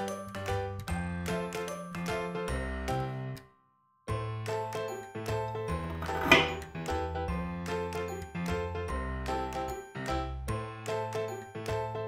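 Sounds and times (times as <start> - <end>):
tinkling children's music: 0.0 - 12.0.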